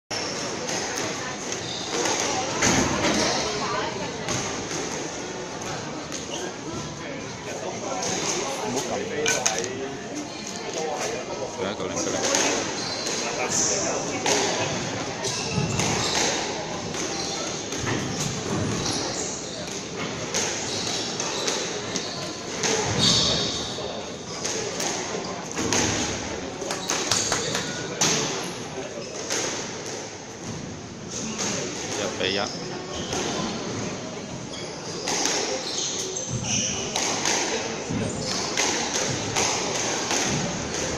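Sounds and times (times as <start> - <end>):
background chatter: 0.1 - 40.9.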